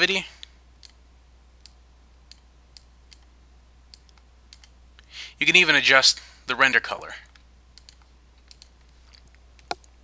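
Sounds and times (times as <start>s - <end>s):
low electrical hum: 0.0s - 10.0s
computer mouse clicks: 0.4s - 1.0s, 1.6s - 3.3s, 3.9s - 4.8s, 7.2s - 10.0s.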